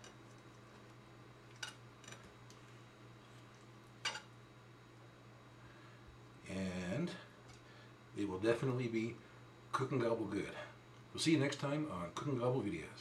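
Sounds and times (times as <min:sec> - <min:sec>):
low steady hum: 0:00.0 - 0:13.0
cutlery clicking on plate: 0:04.0 - 0:04.3.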